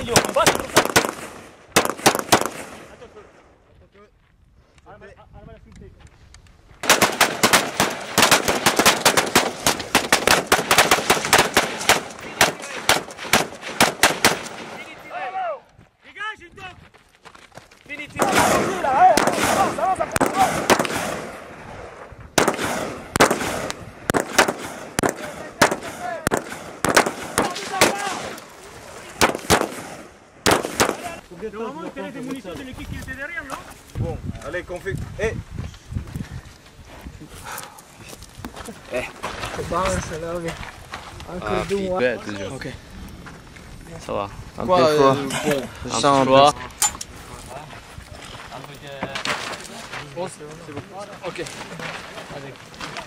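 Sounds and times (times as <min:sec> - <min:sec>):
rapid rifle gunfire: 0:00.0 - 0:02.9, 0:06.8 - 0:14.9, 0:18.2 - 0:21.4, 0:22.4 - 0:28.3, 0:29.2 - 0:31.2.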